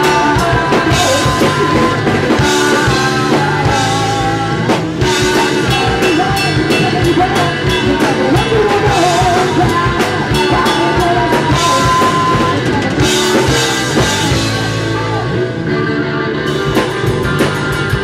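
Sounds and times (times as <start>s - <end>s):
person singing lead vocal: 0.0s - 16.5s
live rock band playing: 0.0s - 18.0s.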